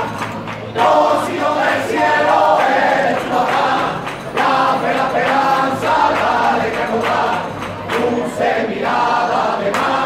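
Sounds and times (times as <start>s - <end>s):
crowd singing in unison: 0.0s - 10.0s.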